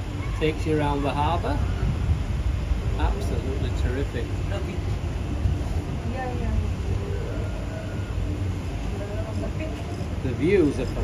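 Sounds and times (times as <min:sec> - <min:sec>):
cable car cabin rumble: 0:01.2 - 0:11.0.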